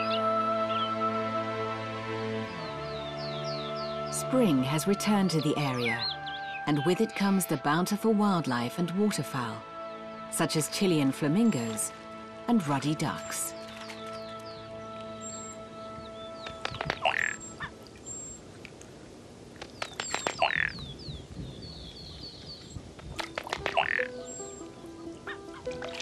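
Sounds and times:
background music with held notes: 0.0 - 18.0, 23.2 - 26.0
duck clicks and splashing: 16.4 - 18.9, 19.5 - 20.8, 22.5 - 26.0.

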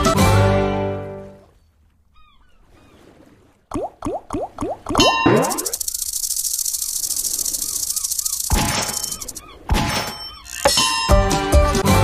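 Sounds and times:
high fast rattle: 5.0 - 9.4.

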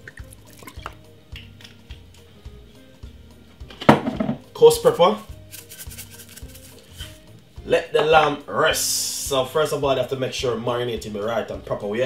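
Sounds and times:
sauce dripping and splashing: 0.0 - 2.3
soft background music: 0.0 - 12.0
sharp knock: 3.9 - 4.4.

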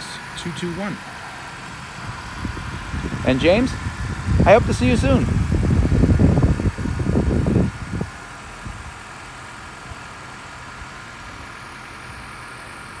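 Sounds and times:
low rumble on microphone: 2.0 - 9.0.

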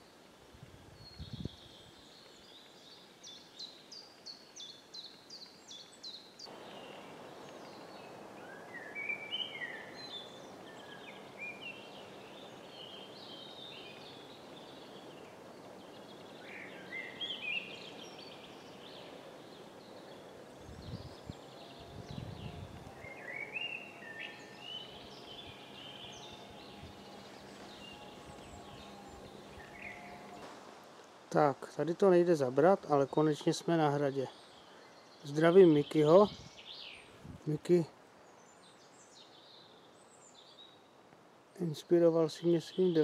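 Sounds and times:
songbirds singing: 0.0 - 43.0
steady background hiss: 0.0 - 43.0.

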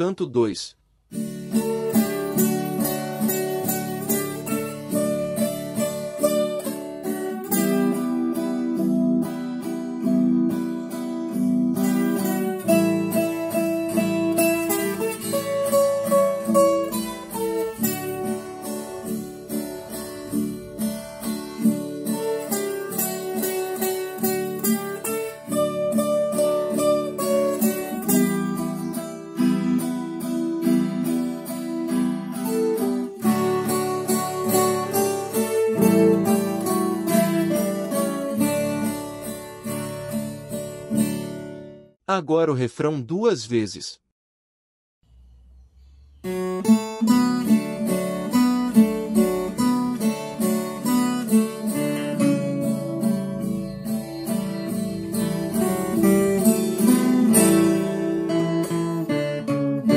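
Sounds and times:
strummed chords: 1.1 - 41.9, 45.1 - 59.9
picked guitar melody: 1.1 - 42.0, 46.2 - 59.9.

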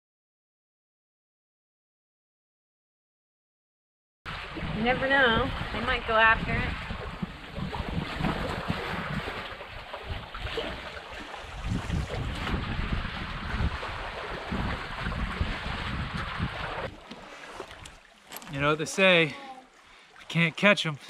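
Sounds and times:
wind buffeting microphone: 4.3 - 18.1
waves lapping on rocks: 4.3 - 21.0.

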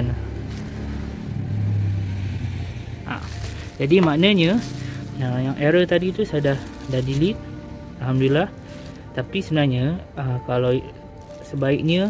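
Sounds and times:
motor vehicle engine hum: 0.0 - 12.0.

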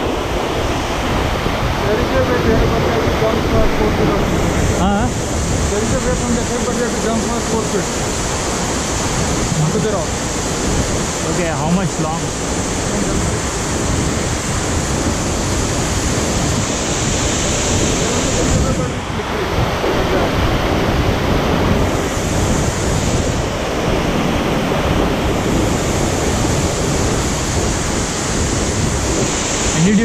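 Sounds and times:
waterfall rushing: 0.0 - 30.0
stream running among boulders: 1.8 - 13.2.

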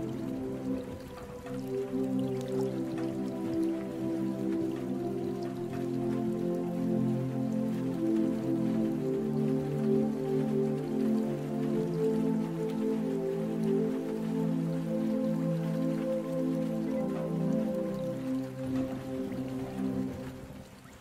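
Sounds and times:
calm ambient music: 0.0 - 21.0
rain pattering: 0.0 - 21.0.

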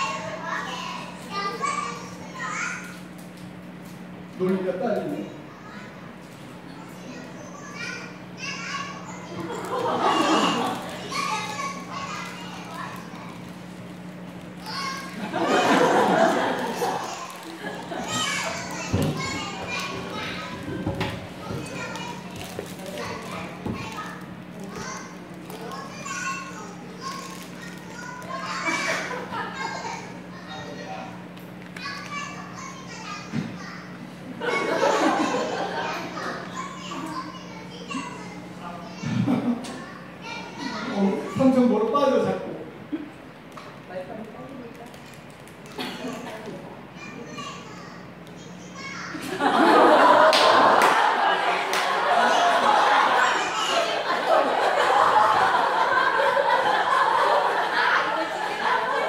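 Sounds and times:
girl talking excitedly: 0.0 - 2.8, 7.0 - 9.4, 10.1 - 13.4, 14.6 - 15.6, 18.1 - 20.8, 21.4 - 30.8, 31.8 - 33.8, 35.2 - 39.2, 47.0 - 49.2
steady low hum: 0.0 - 59.0
second child's voice: 16.6 - 34.0.

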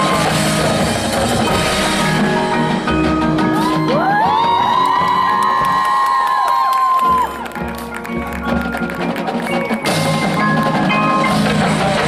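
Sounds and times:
drums and percussion: 0.0 - 12.0.

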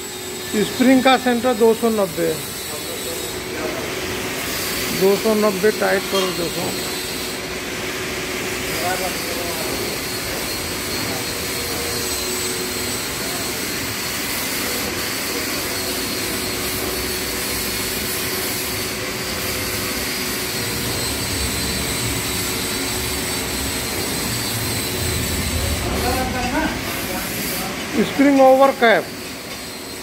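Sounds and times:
workshop machinery whirring: 0.0 - 30.0.

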